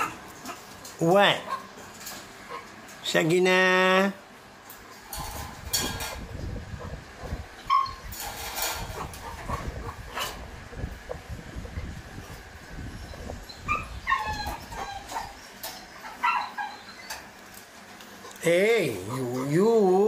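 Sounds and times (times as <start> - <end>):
continuous low rumble: 4.1 - 20.0.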